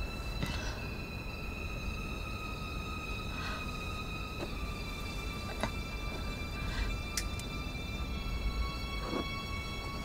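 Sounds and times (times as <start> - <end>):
dissonant high drone: 0.0 - 10.0.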